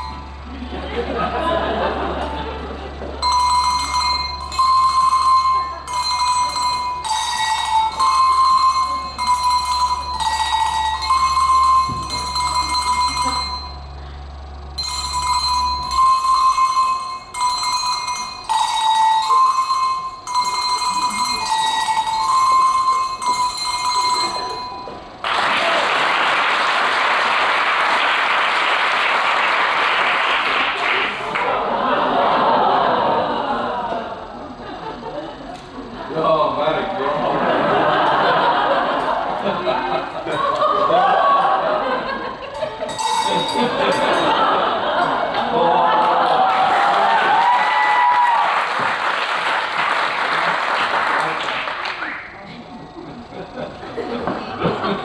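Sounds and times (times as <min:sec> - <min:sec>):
hand bells playing a tune: 0:00.0 - 0:01.9, 0:02.6 - 0:25.2, 0:37.3 - 0:45.6
applause: 0:25.2 - 0:31.5, 0:46.0 - 0:52.4.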